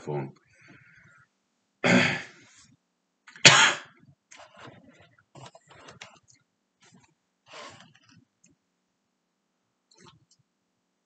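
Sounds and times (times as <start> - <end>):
man coughing: 1.8 - 2.3, 3.4 - 3.9.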